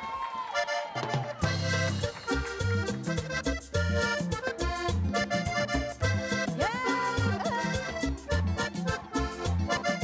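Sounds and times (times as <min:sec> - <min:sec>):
button accordion playing lively tune: 0:00.5 - 0:10.0.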